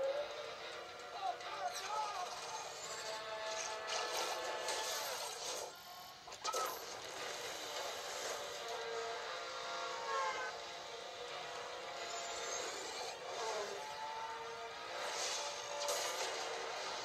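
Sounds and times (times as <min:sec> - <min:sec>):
motorcycle engines revving on television: 0:00.0 - 0:17.0.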